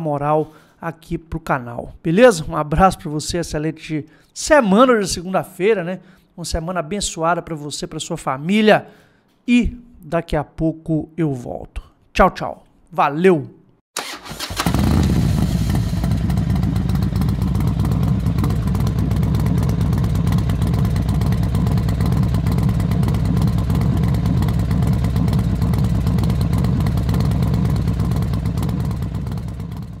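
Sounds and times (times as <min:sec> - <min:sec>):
motorcycle engine running: 0:14.4 - 0:30.0.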